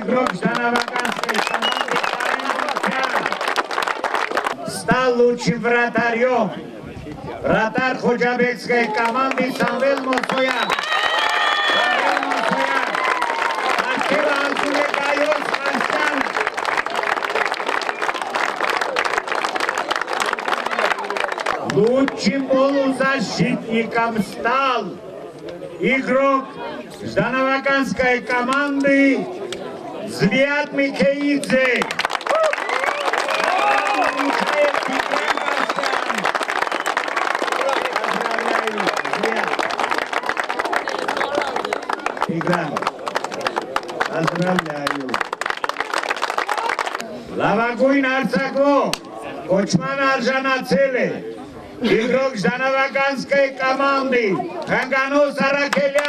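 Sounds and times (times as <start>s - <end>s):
man talking: 0.0s - 3.4s, 4.6s - 10.7s, 11.8s - 12.9s, 13.8s - 16.4s, 21.6s - 25.0s, 30.1s - 31.9s, 33.8s - 36.2s, 37.6s - 39.6s, 42.2s - 42.8s, 44.1s - 45.2s, 47.4s - 51.2s, 51.8s - 56.0s
crowd applauding: 0.0s - 4.7s, 8.7s - 22.8s, 31.0s - 47.8s, 54.6s - 56.0s.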